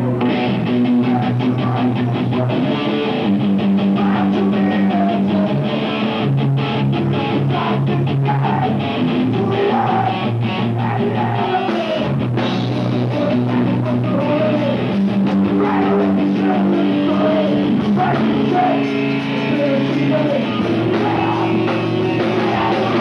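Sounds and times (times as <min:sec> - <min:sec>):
distorted electric guitars: 0:00.0 - 0:23.0
drum kit beating: 0:00.0 - 0:23.0.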